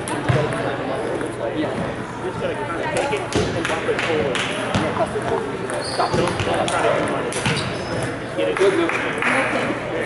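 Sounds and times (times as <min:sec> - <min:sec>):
ball bouncing: 0:00.1 - 0:02.0, 0:03.0 - 0:08.2.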